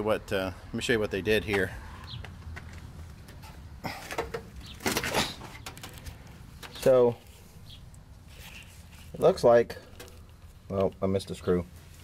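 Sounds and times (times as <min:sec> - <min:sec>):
bird chirping: 0:01.8 - 0:02.4, 0:04.4 - 0:04.9, 0:06.6 - 0:08.7.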